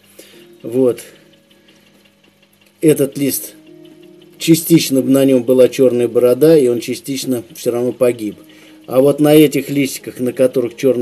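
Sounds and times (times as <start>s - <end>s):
air pump humming: 0.0s - 11.0s.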